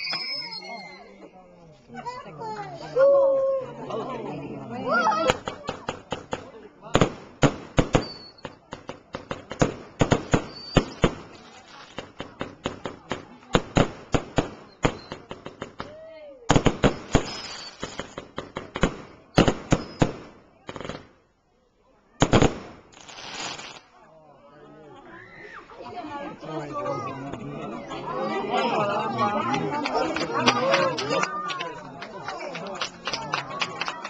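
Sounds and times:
fireworks banging and crackling: 5.2s - 21.2s, 22.2s - 24.0s
firework hissing burst: 22.3s - 23.9s.

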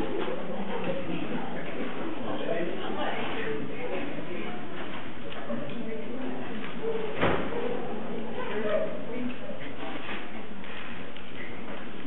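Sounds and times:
murmur of overlapping voices: 0.0s - 12.0s.

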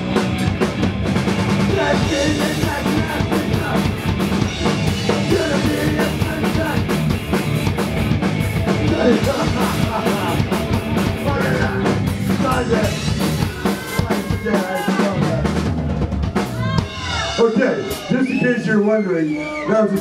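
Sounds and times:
punk band playing live: 0.0s - 20.0s.

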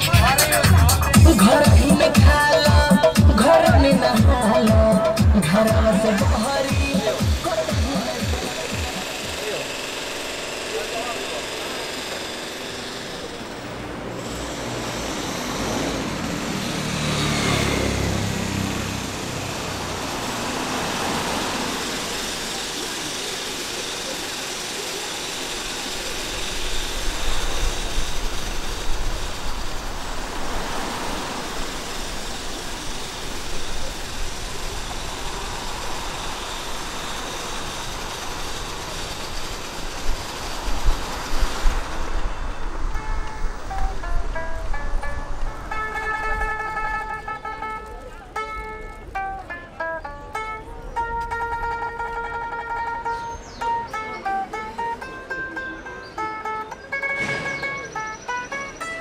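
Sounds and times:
plucked-string music: 0.0s - 9.5s, 42.1s - 59.0s
road traffic: 0.0s - 59.0s.

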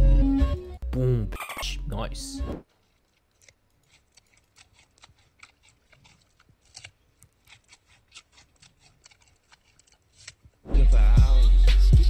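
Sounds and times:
panda crunching a carrot: 2.7s - 10.8s.

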